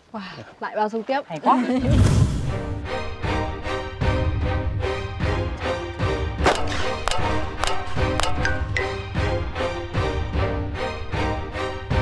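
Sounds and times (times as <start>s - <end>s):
background music with steady beat: 2.6s - 12.0s.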